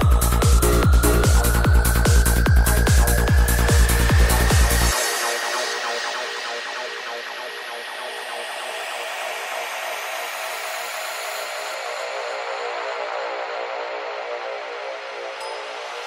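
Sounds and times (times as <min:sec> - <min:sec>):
pulsing synths over sustained tones: 0:00.0 - 0:14.7.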